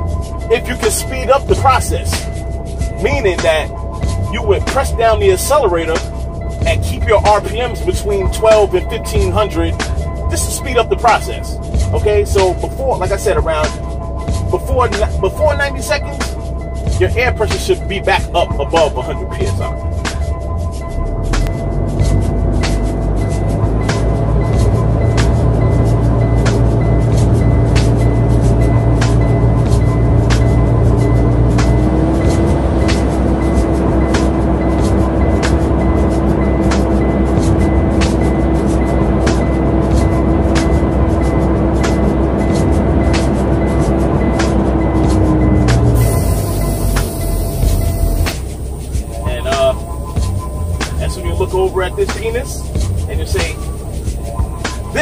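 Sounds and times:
hip-hop music with steady beat: 0.0 - 55.0.

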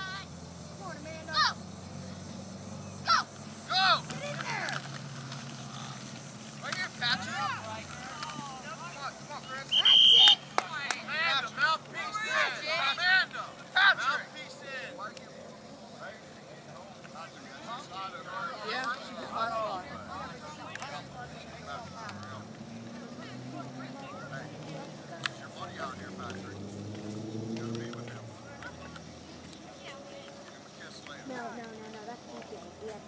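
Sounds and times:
young players shouting: 0.0 - 1.7, 3.0 - 4.9, 6.6 - 15.0, 17.4 - 22.4
whistle blown: 9.6 - 10.5.

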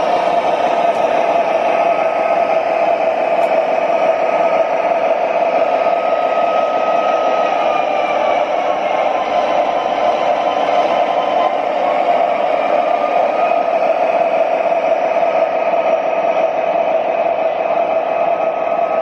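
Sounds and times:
diesel engine drone from speaker: 0.0 - 15.4.

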